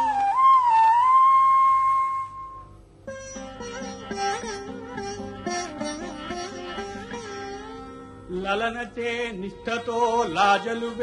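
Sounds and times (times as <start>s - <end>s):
flute holding a long note: 0.0s - 2.8s.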